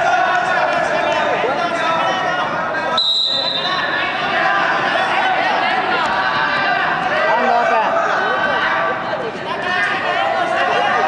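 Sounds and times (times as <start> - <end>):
people shouting in a hall: 0.0 - 11.0
referee's whistle: 3.0 - 4.0.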